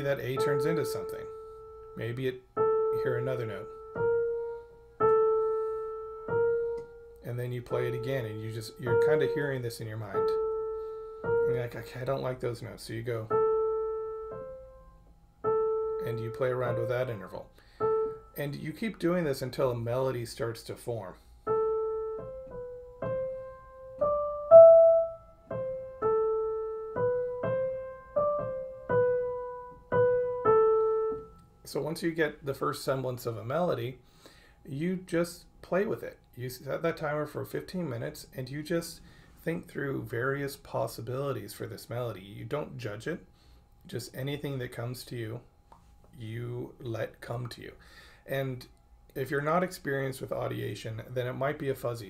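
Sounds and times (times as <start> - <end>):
piano note ringing: 0.0 - 12.4, 13.1 - 19.0, 21.4 - 31.7.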